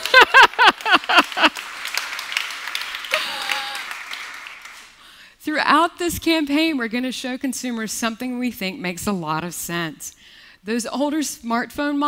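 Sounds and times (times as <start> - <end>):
audience applauding: 0.0 - 5.0.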